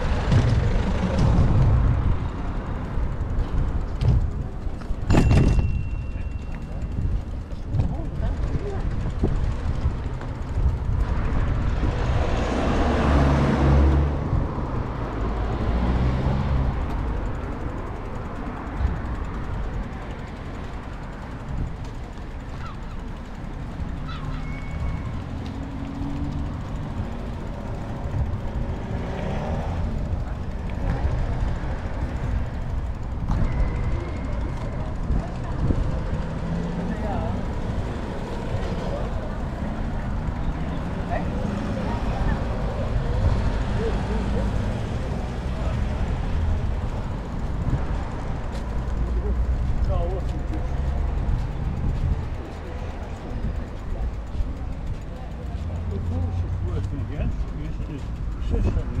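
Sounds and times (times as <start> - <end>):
wind buffeting microphone: 6.6 - 12.8, 51.1 - 55.1
faint voices: 17.1 - 59.0.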